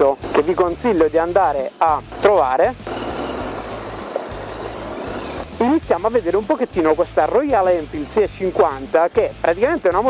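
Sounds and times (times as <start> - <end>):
background music with bass line: 0.0 - 10.0
motorcycle engine: 2.1 - 5.8.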